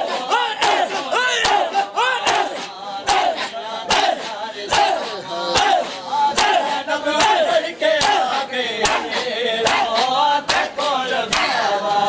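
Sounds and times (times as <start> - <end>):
hands slapping chests: 0.0 - 11.6
men chanting a lament: 0.0 - 12.0.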